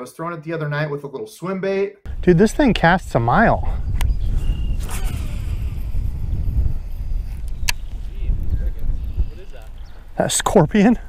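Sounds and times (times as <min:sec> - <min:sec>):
wind on microphone: 0:02.1 - 0:11.0
fishing reel spool whine: 0:04.5 - 0:07.0
sharp click: 0:07.4 - 0:07.9.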